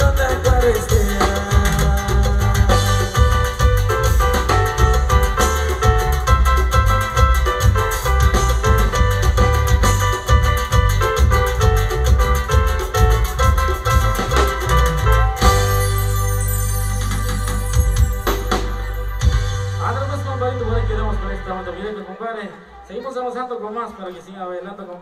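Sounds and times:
steady drum beat: 0:00.0 - 0:21.2
live band dance music: 0:00.0 - 0:24.9.

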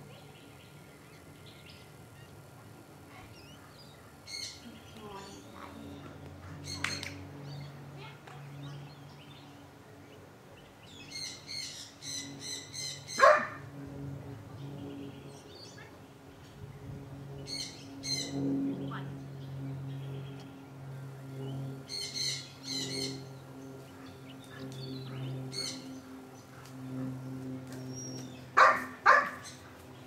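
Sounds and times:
birds chirping: 0:00.0 - 0:30.0
low hum: 0:00.0 - 0:30.0.

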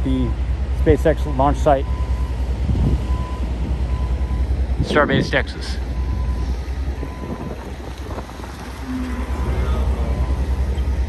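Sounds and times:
heavy machinery rumbling: 0:00.0 - 0:11.0.

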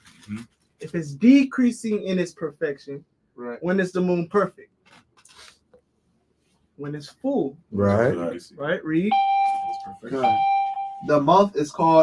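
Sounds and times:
long electronic beeps: 0:09.1 - 0:11.3.

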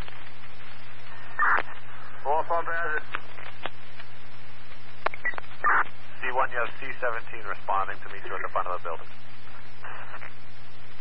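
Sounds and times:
low hum: 0:00.0 - 0:11.0
radio hiss: 0:00.0 - 0:11.0.

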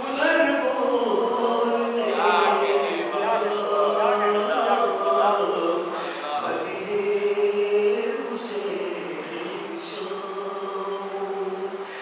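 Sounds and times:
man chanting into a microphone: 0:00.0 - 0:06.9.

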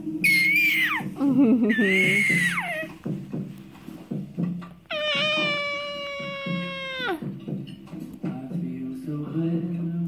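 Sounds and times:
faint tv music: 0:00.0 - 0:10.0
infant squealing: 0:00.2 - 0:03.0, 0:04.9 - 0:07.3.

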